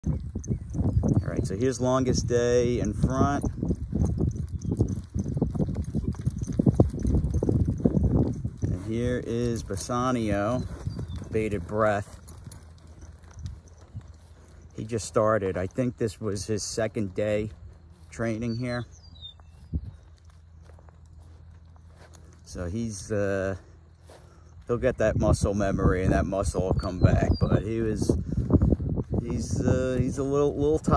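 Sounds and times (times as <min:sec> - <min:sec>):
horse hoofbeats on dirt: 0:00.0 - 0:30.9
soft footsteps: 0:00.3 - 0:25.8.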